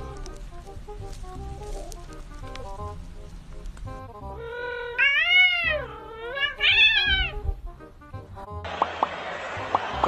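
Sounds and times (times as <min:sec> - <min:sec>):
cat yowling and meowing: 0:04.4 - 0:07.5.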